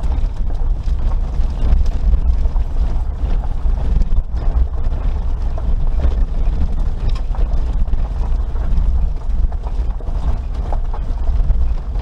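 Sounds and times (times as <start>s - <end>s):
creaks and knocks from suspension: 0.0s - 12.0s
vehicle rumbling over gravel: 0.0s - 12.0s.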